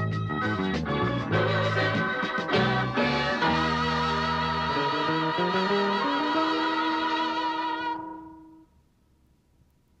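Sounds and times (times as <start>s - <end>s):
organ piano and bass chord: 0.0s - 8.7s.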